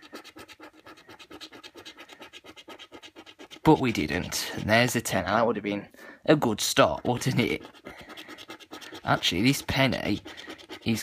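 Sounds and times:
coin scraping a scratchcard: 0.0s - 4.7s, 7.1s - 11.0s.

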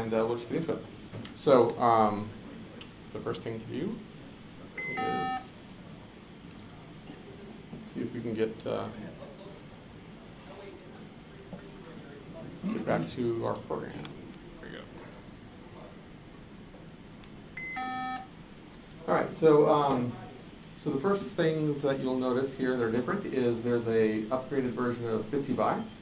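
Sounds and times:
electronic computer beep: 4.8s - 5.5s, 17.6s - 18.3s.

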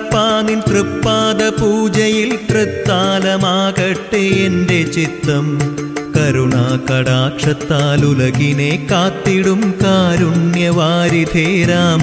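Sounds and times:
devotional song with singer: 0.0s - 12.0s
instrumental accompaniment with beat: 0.0s - 12.0s.

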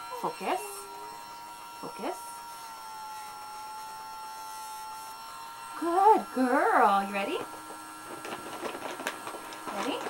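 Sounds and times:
rotary nail grinder whining: 0.0s - 10.0s.

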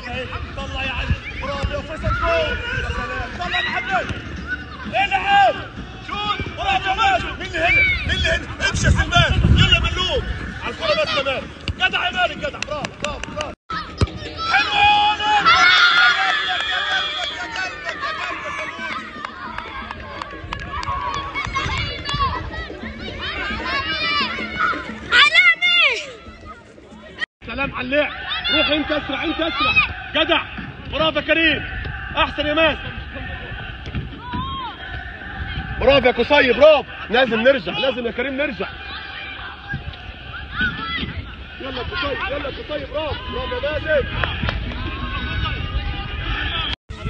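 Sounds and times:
children shouting: 13.7s - 26.8s, 38.6s - 45.5s.

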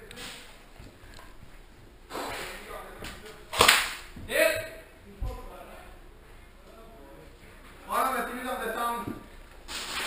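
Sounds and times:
sharp crack: 3.5s - 4.1s.

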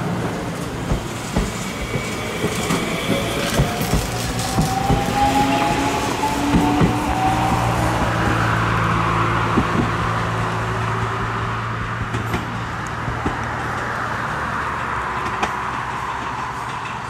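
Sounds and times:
wheels clicking on track: 0.1s - 17.0s.

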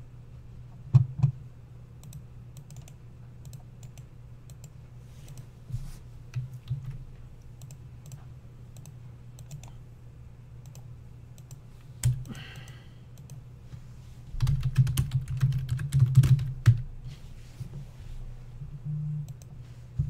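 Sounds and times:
steady low hum: 0.0s - 20.0s
computer mouse clicks: 2.0s - 5.5s, 6.3s - 9.8s, 10.6s - 13.4s.

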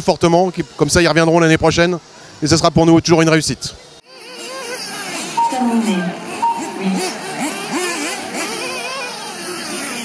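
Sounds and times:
rc buggy engines revving: 4.0s - 10.0s.

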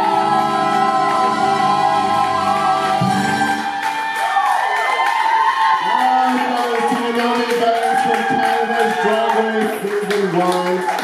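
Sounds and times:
audience cheering and whooping: 0.0s - 11.0s.

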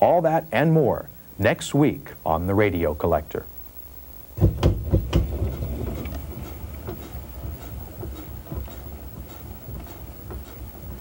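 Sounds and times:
piano mechanism knocking: 4.4s - 11.0s.

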